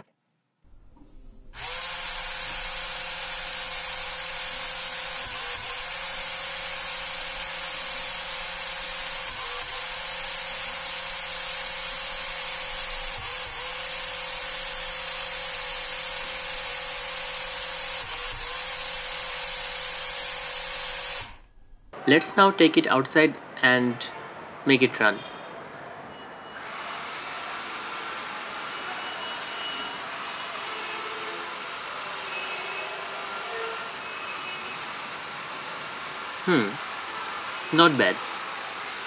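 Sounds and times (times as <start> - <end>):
small gear motors humming: 1.6 - 21.5.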